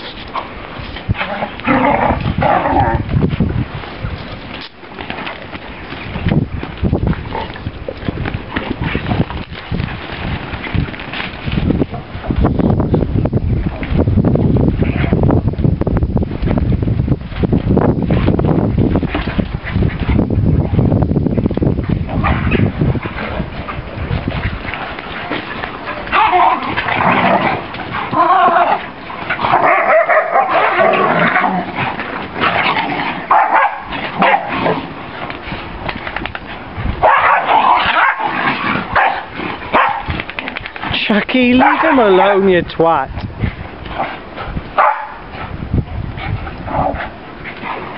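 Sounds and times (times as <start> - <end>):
low rumbling noise: 0.0 - 41.9
dogs yipping and barking: 24.6 - 35.0, 37.0 - 40.7, 44.8 - 45.3.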